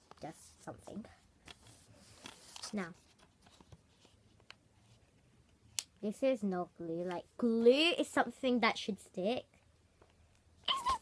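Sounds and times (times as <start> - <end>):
paper rustling: 1.4 - 5.0.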